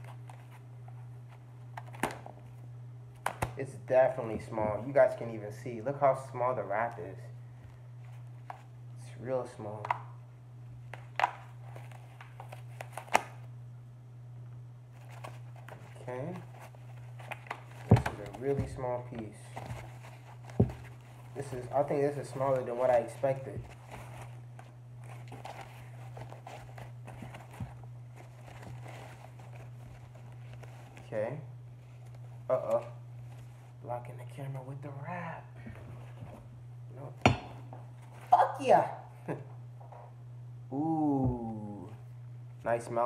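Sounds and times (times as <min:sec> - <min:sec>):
steady low hum: 0:00.0 - 0:43.0
cloth and packing rustling: 0:14.9 - 0:33.8.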